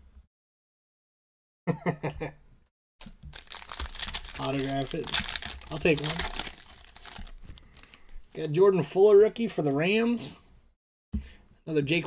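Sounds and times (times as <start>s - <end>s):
cards rustling: 3.0s - 8.1s
foil wrapper crinkling: 3.0s - 8.2s.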